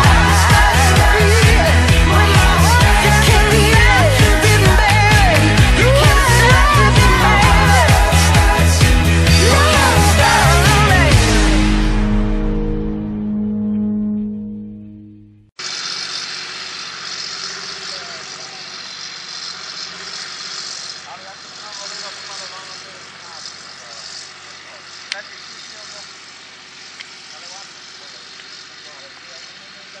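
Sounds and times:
tractor diesel engine running: 0.0s - 12.6s, 15.5s - 30.0s
rock music: 0.0s - 14.7s.

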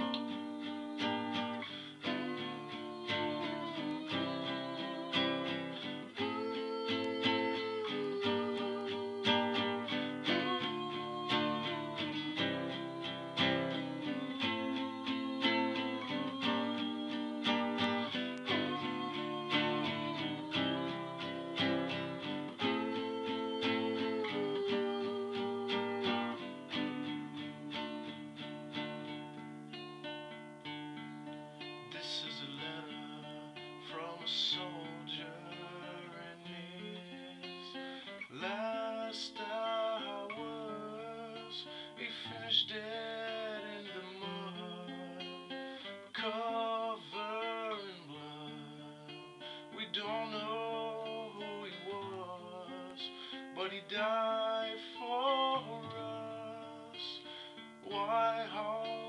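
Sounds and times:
classical guitar chords: 0.0s - 59.0s.

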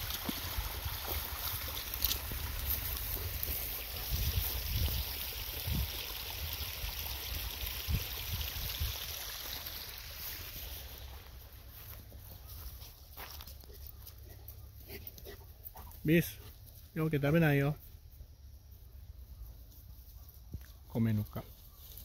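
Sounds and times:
stream water trickling: 0.0s - 13.1s.

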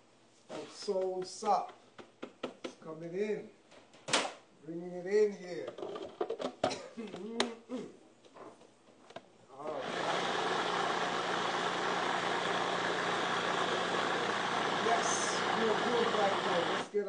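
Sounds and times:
food processor motor humming: 9.6s - 16.9s.

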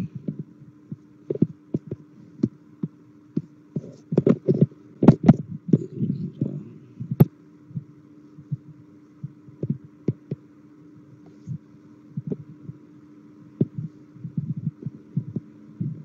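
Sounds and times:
electrical hum: 0.0s - 16.0s
thumps and clicks: 0.2s - 5.9s, 8.5s - 10.4s.

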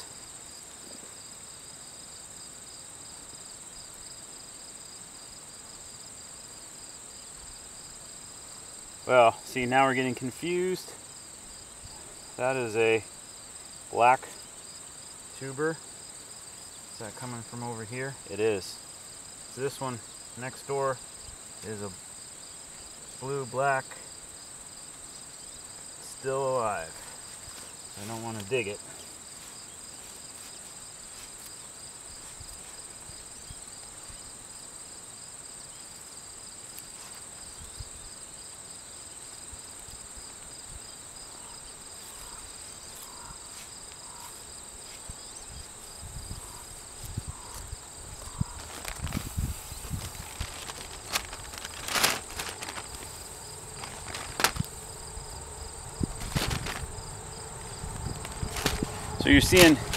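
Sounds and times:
insects chirring: 0.0s - 59.9s
hands scraping through soil: 48.3s - 54.9s, 58.0s - 59.9s.

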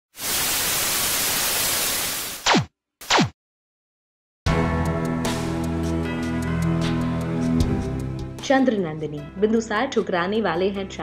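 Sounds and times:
television static hiss: 0.2s - 2.3s.

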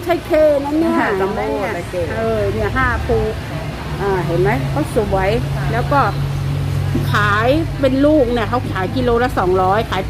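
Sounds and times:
woman speaking: 0.0s - 3.4s, 4.0s - 6.2s, 7.0s - 10.0s.

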